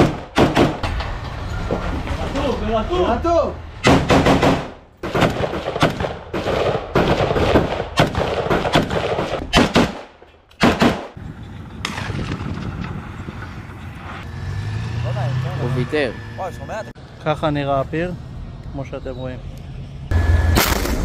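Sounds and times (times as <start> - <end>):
rifle gunfire: 3.9 - 11.2.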